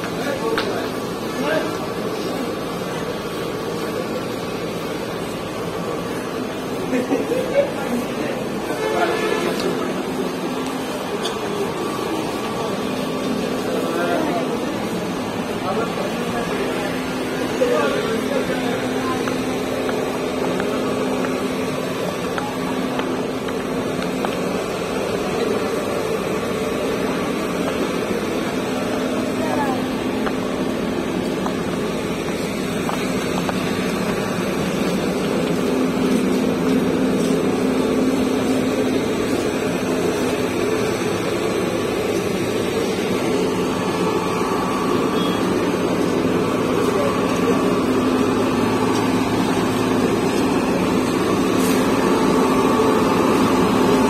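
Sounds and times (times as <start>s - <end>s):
people talking: 0.0s - 54.0s
traffic engine hum: 0.0s - 54.0s.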